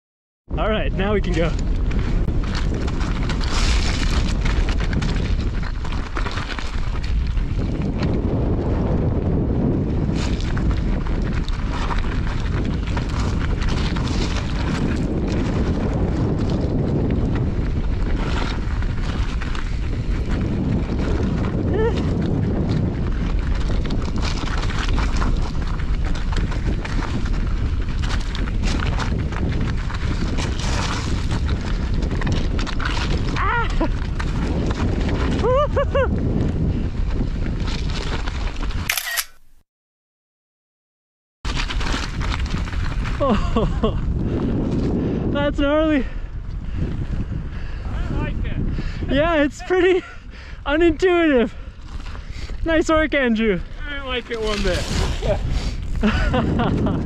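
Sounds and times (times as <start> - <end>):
wind rumble on microphone: 0.5 - 38.9, 41.5 - 57.0
bike rattling: 1.0 - 39.6, 41.5 - 57.0.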